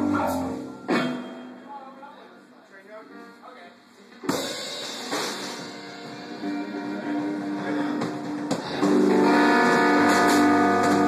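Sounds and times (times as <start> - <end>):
drums: 0.0 - 1.9, 4.0 - 11.0
electric guitar ringing chord: 8.8 - 11.0.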